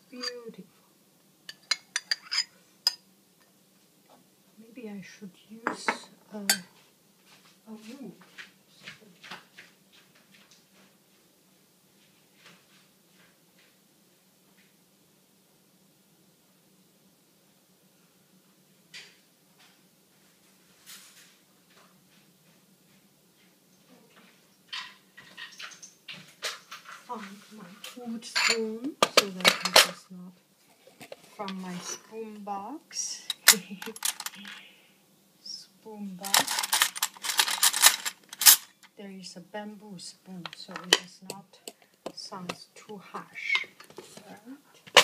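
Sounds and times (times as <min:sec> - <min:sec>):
woman speaking: 0:00.0 - 0:00.7, 0:04.6 - 0:06.7, 0:07.7 - 0:08.2, 0:27.1 - 0:30.4, 0:31.4 - 0:34.6, 0:35.4 - 0:37.0, 0:39.0 - 0:44.8
kitchen utensils clinking: 0:01.5 - 0:03.0, 0:24.7 - 0:27.3, 0:28.3 - 0:30.0, 0:33.2 - 0:34.6, 0:36.2 - 0:38.9
metal spoon scraping saucepan: 0:01.5 - 0:03.0, 0:31.0 - 0:32.1, 0:43.2 - 0:44.2.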